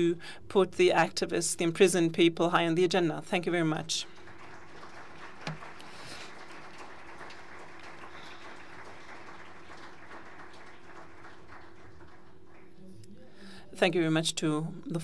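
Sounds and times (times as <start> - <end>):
audience applauding: 4.1 - 12.8.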